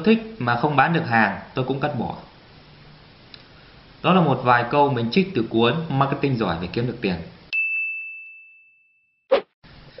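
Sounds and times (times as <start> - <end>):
high pure ding: 7.5 - 9.2.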